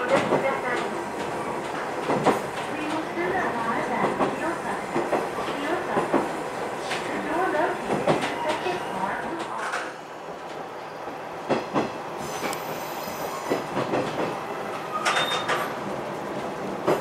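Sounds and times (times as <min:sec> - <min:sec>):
rail-joint clicks: 0:00.0 - 0:03.1, 0:04.0 - 0:10.6, 0:11.5 - 0:15.8, 0:16.4 - 0:17.0.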